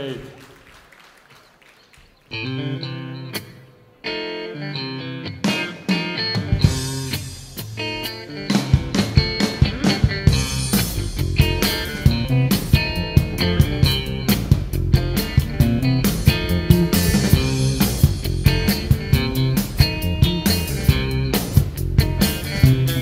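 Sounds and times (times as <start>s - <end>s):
bass guitar: 2.3s - 23.0s
electric guitar chords: 2.3s - 23.0s
live rock band playing: 2.3s - 23.0s
drum hits: 8.5s - 23.0s.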